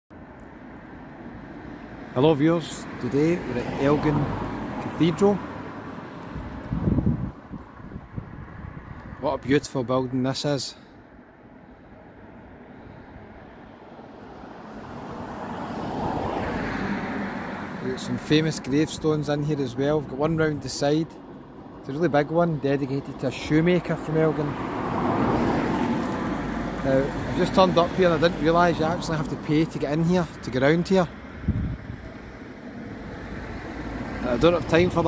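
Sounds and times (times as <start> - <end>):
passing vehicle tyre and engine noise: 0.2 - 35.0.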